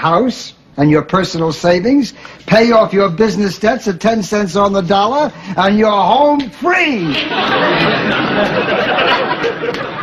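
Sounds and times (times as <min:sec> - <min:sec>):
audience laughing: 0:06.9 - 0:10.0.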